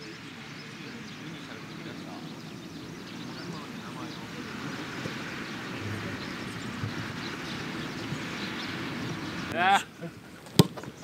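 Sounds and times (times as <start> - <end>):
faint indistinct voices: 0.0 - 10.2
low outdoor rumble: 0.0 - 11.0.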